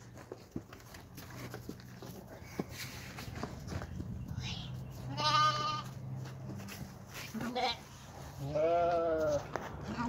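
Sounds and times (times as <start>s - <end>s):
footsteps on dry straw: 0.0s - 9.9s.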